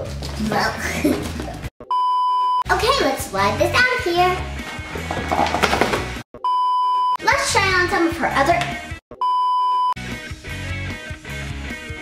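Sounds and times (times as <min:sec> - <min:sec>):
electronic test-tone beep: 0:01.8 - 0:02.6, 0:06.4 - 0:07.2, 0:09.2 - 0:10.0.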